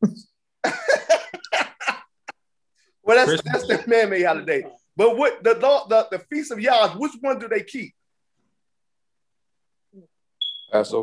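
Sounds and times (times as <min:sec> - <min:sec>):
man laughing: 0:00.6 - 0:02.4, 0:03.2 - 0:04.2.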